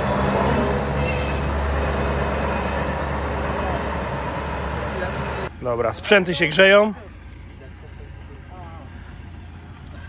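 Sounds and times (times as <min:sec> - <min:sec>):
tractor diesel engine idling: 0:00.0 - 0:10.0.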